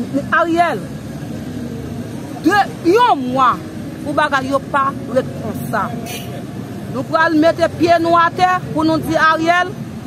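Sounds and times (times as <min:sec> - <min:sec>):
woman's voice: 0:00.0 - 0:00.9, 0:02.4 - 0:06.0, 0:06.9 - 0:09.8
street traffic hum: 0:00.0 - 0:10.0.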